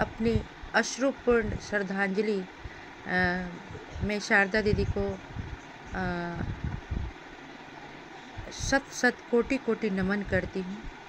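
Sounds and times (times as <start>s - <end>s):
steady background hum: 0.0s - 11.0s
low rumbling thumps: 1.3s - 7.2s.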